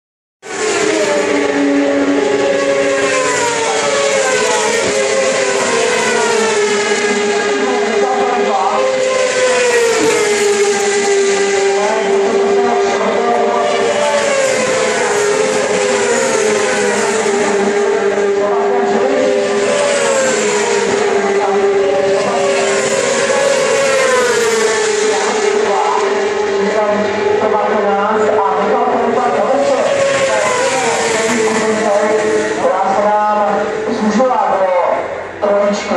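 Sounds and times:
racing motorcycle engines revving: 0.4s - 35.9s.

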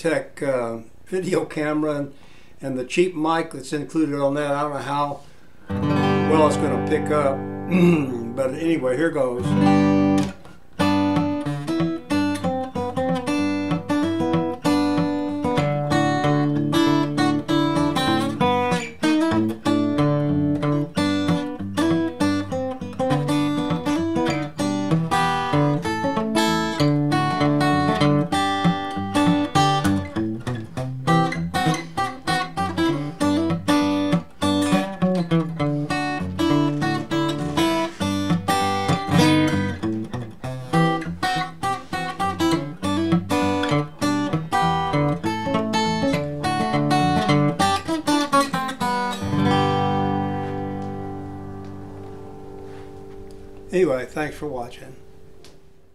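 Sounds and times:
acoustic guitar picked and strummed: 0.0s - 55.9s.

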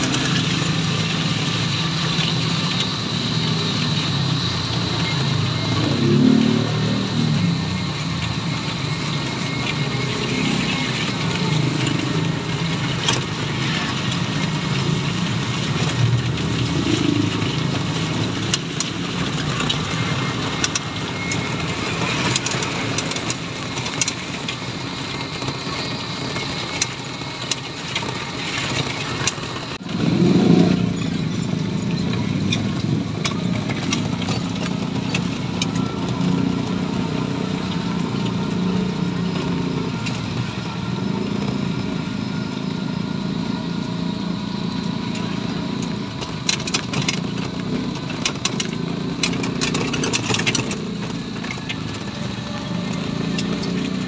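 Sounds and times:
low rumble of motor traffic: 0.0s - 54.0s.

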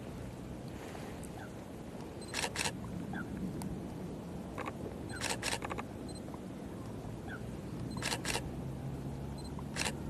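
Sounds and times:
camera shutter clicks: 2.3s - 2.8s, 5.2s - 5.8s, 8.0s - 8.4s, 9.7s - 10.0s.

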